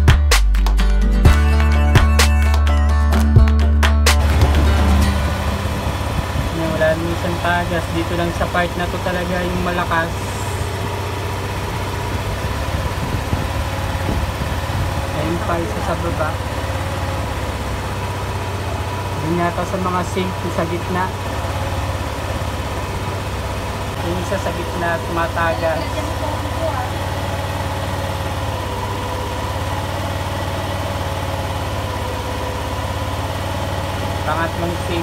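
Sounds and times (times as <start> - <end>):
background music with guitar: 0.0 - 6.4
scooter engine idling: 4.1 - 35.0.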